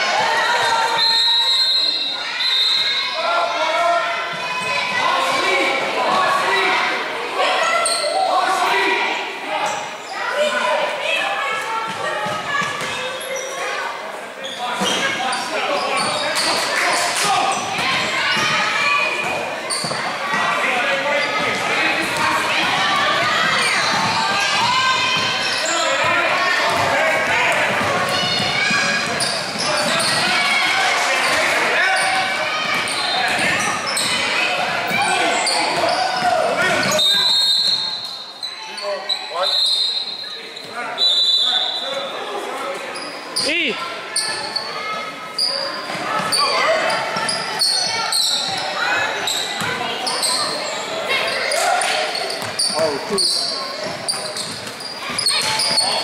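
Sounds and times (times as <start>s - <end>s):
voices calling out: 0.0s - 56.0s.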